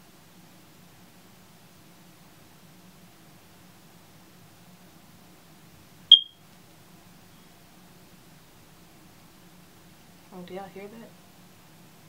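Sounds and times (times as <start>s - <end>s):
short high-pitched beep: 6.1s - 6.4s.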